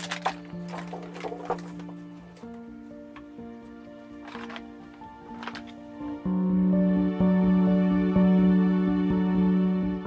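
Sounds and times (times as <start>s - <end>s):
foil bag crinkling: 0.0s - 2.7s, 3.7s - 5.9s
background music with held notes: 0.0s - 10.0s.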